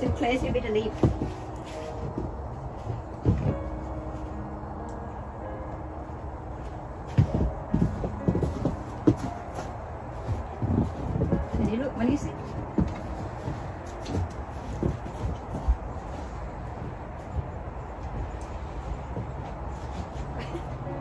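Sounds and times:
footsteps crunching in snow: 0.0s - 4.0s, 7.1s - 20.6s
low background rumble: 0.0s - 21.0s.

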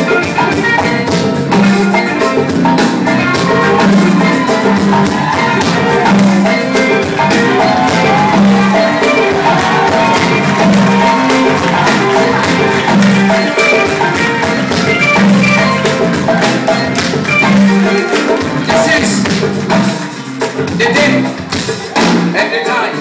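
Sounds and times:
pitched melodic lines: 0.0s - 21.1s
driving percussion: 0.0s - 23.0s.

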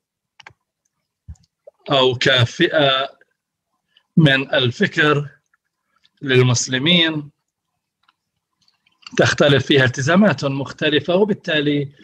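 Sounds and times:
man speaking: 1.8s - 3.3s, 4.2s - 5.4s, 6.2s - 7.4s, 9.1s - 12.0s.

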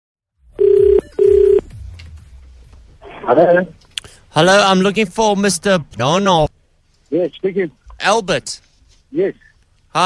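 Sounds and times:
telephone ringback tone: 0.6s - 1.7s.

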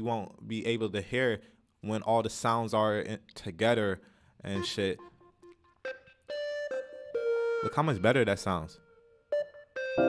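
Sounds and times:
piano melody: 9.3s - 10.0s.

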